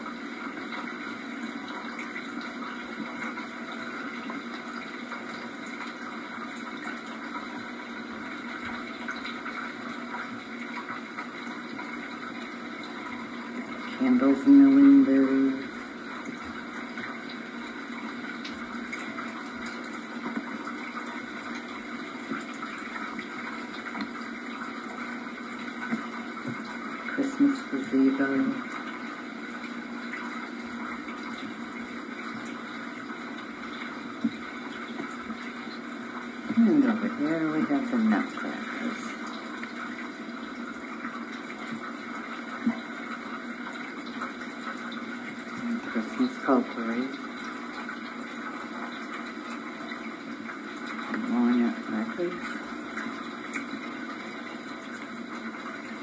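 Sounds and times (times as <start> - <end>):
tape hiss and hum: 0.0 - 56.0.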